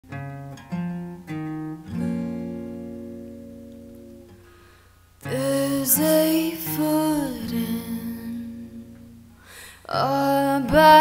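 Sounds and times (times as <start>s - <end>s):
acoustic guitar chords: 0.0s - 11.0s
person singing: 5.2s - 8.9s, 9.8s - 11.0s.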